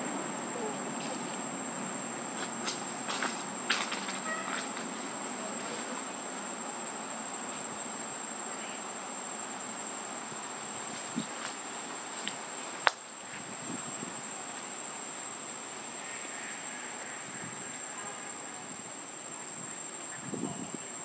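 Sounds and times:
background hiss: 0:00.0 - 0:21.0
insects high-pitched whine: 0:00.0 - 0:21.0.

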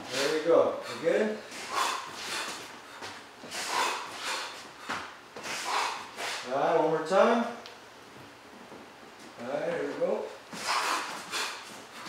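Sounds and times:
sharp breathy exhalations: 0:00.1 - 0:06.5, 0:10.6 - 0:12.0.

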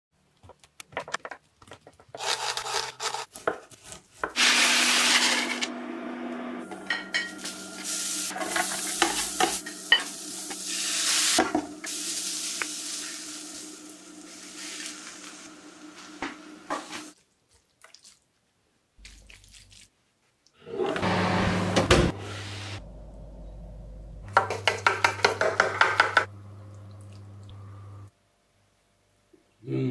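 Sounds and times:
sizzling in a pan: 0:06.6 - 0:17.2.

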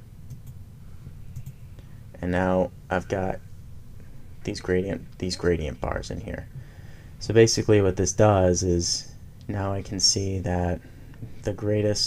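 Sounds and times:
faint room noise: 0:00.0 - 0:12.0
computer mouse clicks: 0:00.3 - 0:00.6, 0:01.3 - 0:01.6.

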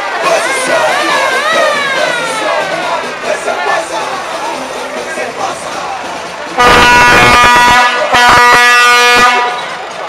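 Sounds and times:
air horn blast: 0:06.6 - 0:09.7.

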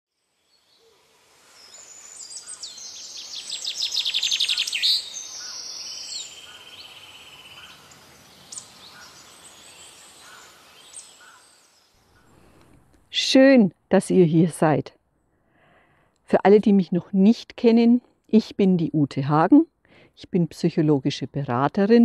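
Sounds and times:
songbirds singing: 0:01.5 - 0:12.6.

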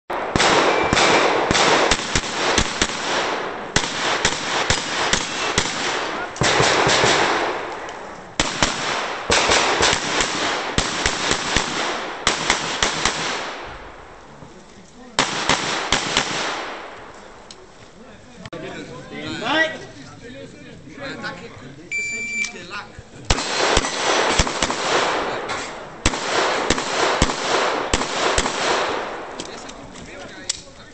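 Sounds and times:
pistol shots with echo: 0:00.1 - 0:13.7, 0:15.2 - 0:17.0, 0:23.3 - 0:29.4.

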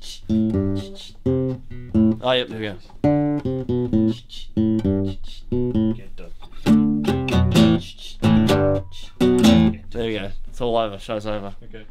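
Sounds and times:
acoustic guitar strumming: 0:00.1 - 0:10.0.

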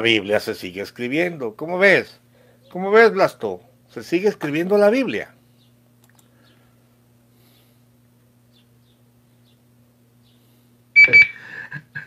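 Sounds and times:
faint electrical hum: 0:00.0 - 0:12.0
high electronic beeps: 0:11.0 - 0:11.4.

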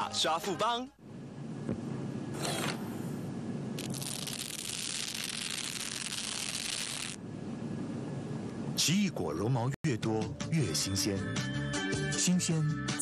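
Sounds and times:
steady low hum: 0:01.0 - 0:04.6, 0:05.6 - 0:09.8.

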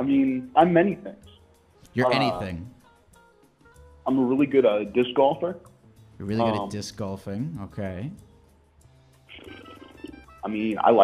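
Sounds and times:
creaky hesitation sound over phone: 0:09.3 - 0:10.4.

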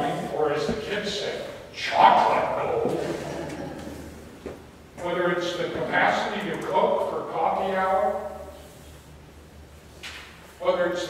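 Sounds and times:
man speaking in reverberant hall: 0:00.0 - 0:03.5, 0:05.0 - 0:08.7, 0:10.6 - 0:11.0.

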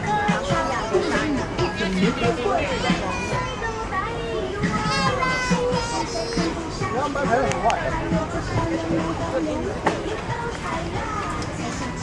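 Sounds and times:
background music: 0:00.0 - 0:12.0
crowd chatter: 0:00.0 - 0:12.0.

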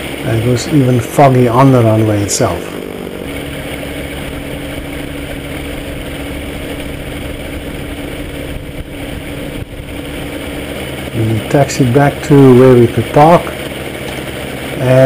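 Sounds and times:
trike engine idling: 0:00.0 - 0:15.0.

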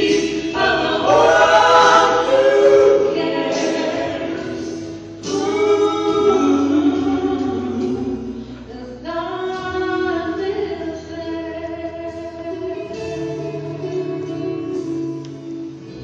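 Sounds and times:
vocal group singing in harmony: 0:00.0 - 0:09.7.

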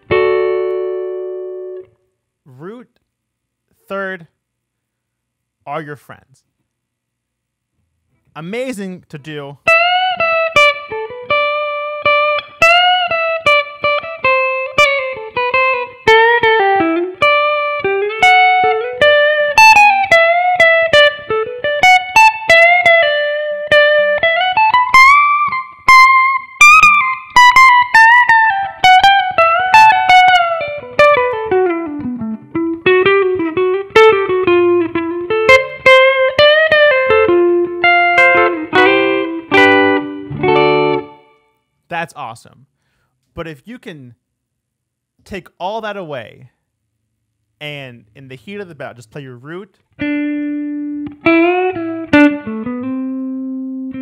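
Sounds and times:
electric guitar lead solo: 0:00.0 - 0:01.9, 0:09.6 - 0:41.4, 0:50.0 - 0:54.0.

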